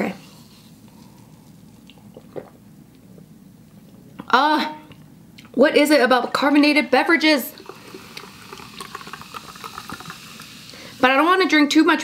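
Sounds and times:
water pouring into a glass: 7.5s - 11.1s
sparkling water fizzing in a glass: 7.5s - 12.0s.

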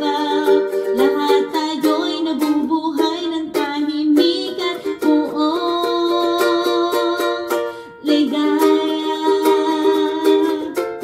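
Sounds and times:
ukulele strumming: 0.0s - 11.0s
woman singing: 0.0s - 11.0s.

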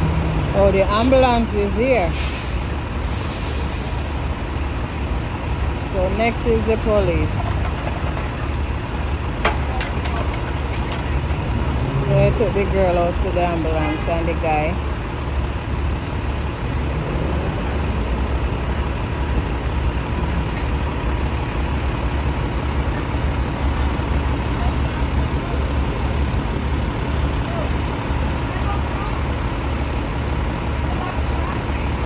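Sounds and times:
heavy vehicles idling: 0.0s - 32.0s
street noise: 0.0s - 32.0s.

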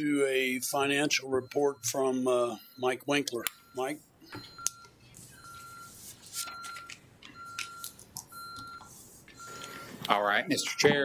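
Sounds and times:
alarm keypad beeping: 0.4s - 11.0s
paper rustling: 5.1s - 8.0s.

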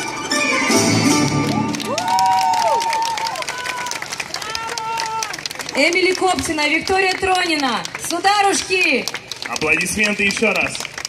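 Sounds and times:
audience clapping and cheering: 0.9s - 11.0s.

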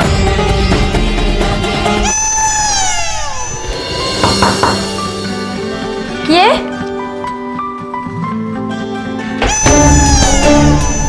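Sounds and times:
downward sliding tone: 2.0s - 6.0s.

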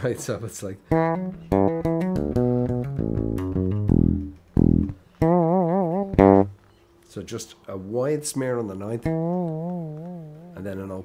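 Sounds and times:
fretless bass riff with slides: 0.9s - 6.6s, 9.0s - 10.8s.

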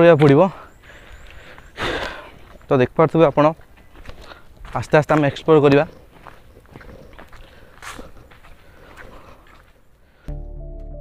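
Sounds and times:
footsteps on leaves and concrete: 0.0s - 10.3s.

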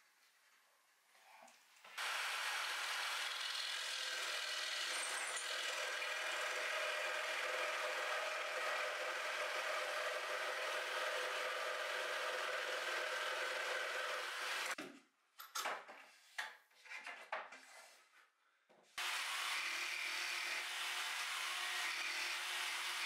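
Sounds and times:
jigsaw cutting wooden board: 2.0s - 14.8s, 19.0s - 23.0s.

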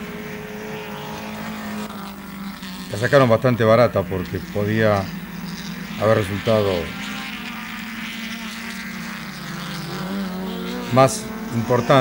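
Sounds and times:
race car engines at high revs: 0.0s - 12.0s.

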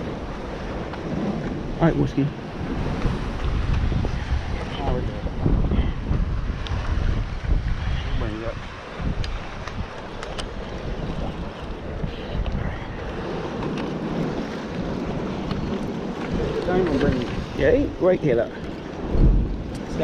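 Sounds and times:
surf washing against rock: 0.0s - 20.0s
wind buffeting microphone: 0.0s - 20.0s.

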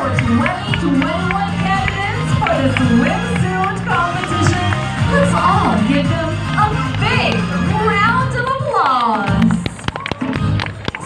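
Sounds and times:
loud music with beat and bass: 0.0s - 10.9s.

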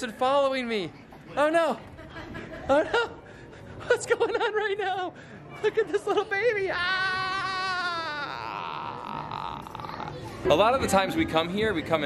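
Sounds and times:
man exclaiming aaah: 6.7s - 9.8s.

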